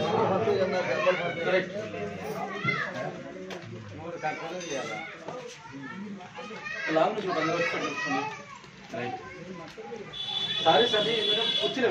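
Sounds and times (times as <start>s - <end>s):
overlapping chatter: 0.0s - 11.9s.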